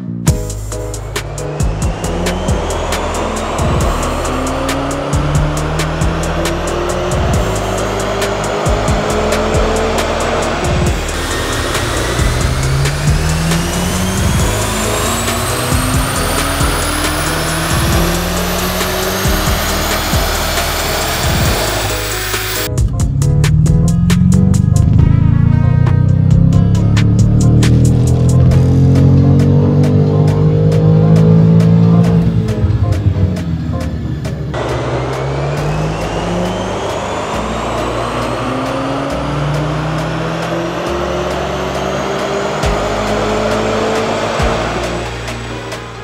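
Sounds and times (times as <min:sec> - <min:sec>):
car engine revving at full throttle: 0:00.6 - 0:22.7, 0:23.4 - 0:46.0.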